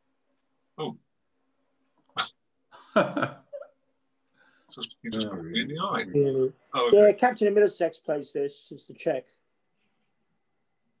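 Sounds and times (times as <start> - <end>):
person laughing: 2.8 - 3.7.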